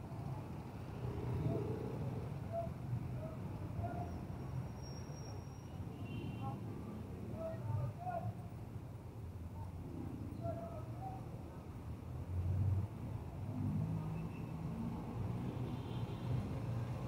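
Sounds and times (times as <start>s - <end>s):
low rumble of traffic: 0.0s - 17.0s.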